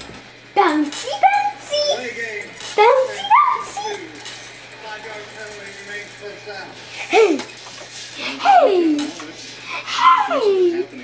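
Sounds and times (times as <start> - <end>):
indistinct voices in a room: 0.0 - 11.0
steady low hum: 0.0 - 11.0.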